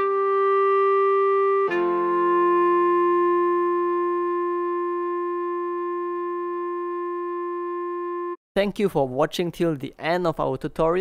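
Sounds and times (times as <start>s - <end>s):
clarinet long note: 0.0s - 8.4s
keyboard chord: 0.0s - 8.4s.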